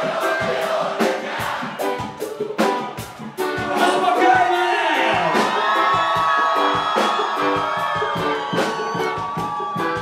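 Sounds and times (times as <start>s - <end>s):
crowd cheering: 0.0s - 10.0s
live band music: 0.0s - 10.0s
steady drumbeat: 0.0s - 10.0s.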